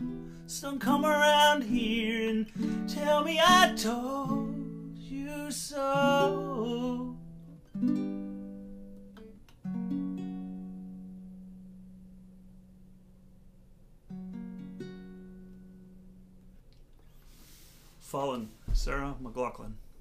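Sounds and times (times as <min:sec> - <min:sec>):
ukulele strummed chords: 0:00.0 - 0:13.0, 0:14.1 - 0:16.5.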